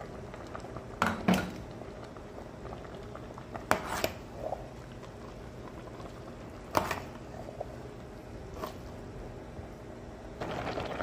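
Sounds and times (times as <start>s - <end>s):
pot bubbling simmer: 0.0s - 11.0s.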